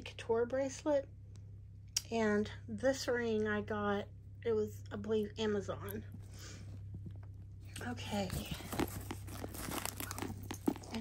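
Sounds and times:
hand rummaging in a bag: 6.2s - 11.0s.

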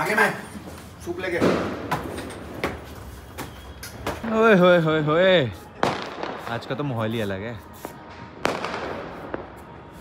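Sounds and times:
firework bang: 1.4s - 2.2s, 5.8s - 6.8s, 8.2s - 9.8s.

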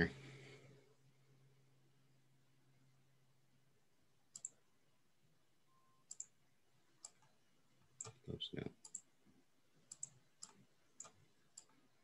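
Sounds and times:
faint mouse clicks: 4.3s - 4.6s, 6.0s - 6.4s, 7.0s - 8.2s, 8.8s - 9.1s, 9.8s - 11.9s.

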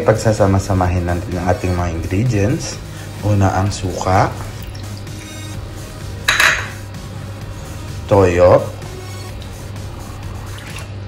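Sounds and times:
background music: 0.0s - 11.0s
ceramic bowl clinking: 6.3s - 6.9s.

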